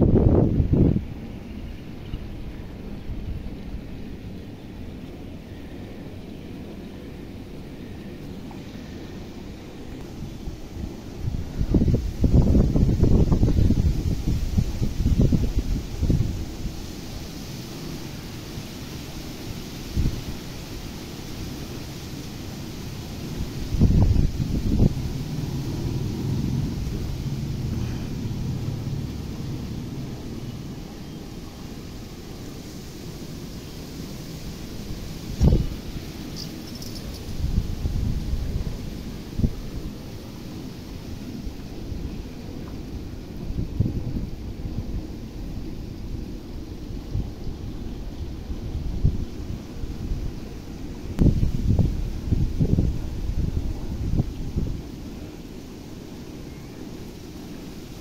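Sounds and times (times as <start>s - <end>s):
steady outdoor hiss: 0.0s - 58.0s
wind buffeting microphone: 0.0s - 58.0s.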